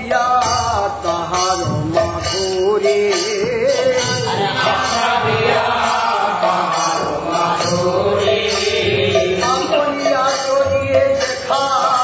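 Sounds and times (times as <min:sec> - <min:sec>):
small hand cymbals jingling: 0:00.0 - 0:12.0
group singing a devotional chant: 0:03.1 - 0:12.0.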